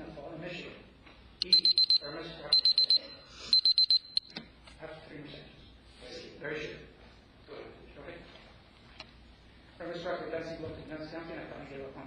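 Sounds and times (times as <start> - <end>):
timer beeping: 1.4 - 4.3.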